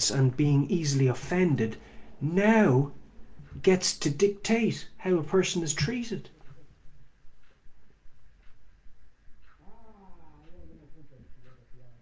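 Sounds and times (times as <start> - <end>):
man humming: 9.6 - 12.0.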